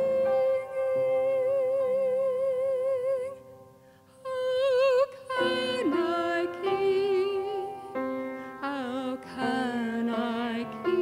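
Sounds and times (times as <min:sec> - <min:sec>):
woman singing with vibrato: 0:00.0 - 0:03.4, 0:04.1 - 0:11.0.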